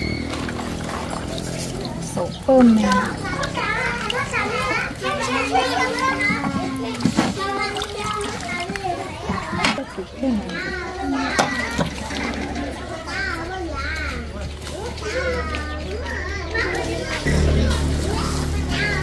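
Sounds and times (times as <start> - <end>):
high-pitched voices talking: 1.9 - 19.0.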